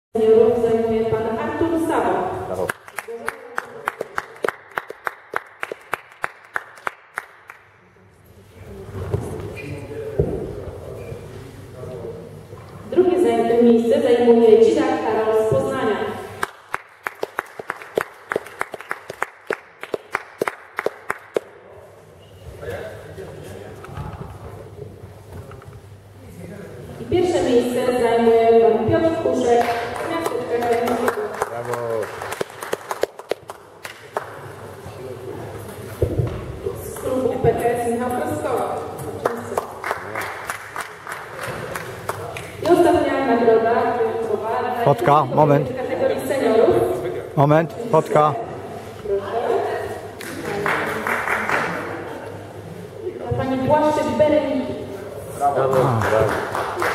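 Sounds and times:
people clapping in rhythm: 2.6 - 7.8, 16.4 - 21.6, 29.6 - 34.6, 39.0 - 42.8, 50.2 - 52.1, 55.6 - 56.9.

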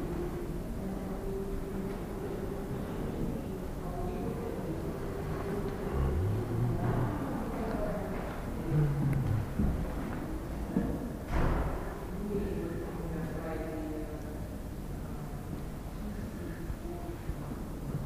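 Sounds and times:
steady room noise: 0.0 - 18.0
indistinct low voices: 1.0 - 10.5.

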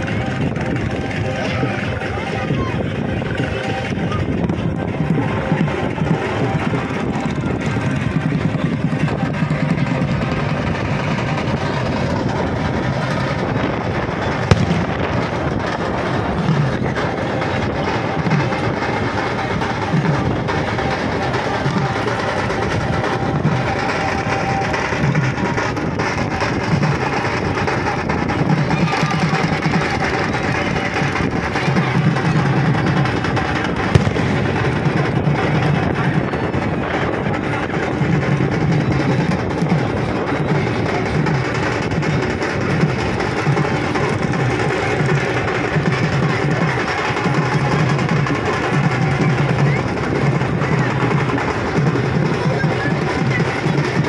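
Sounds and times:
band drums and music: 0.0 - 54.0
crowd noise: 0.0 - 54.0
sharp bangs: 4.5 - 28.3, 30.2 - 37.6.

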